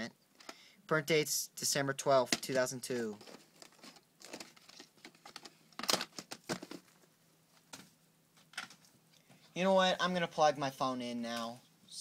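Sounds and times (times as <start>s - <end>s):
plastic case rustling: 2.2s - 8.9s.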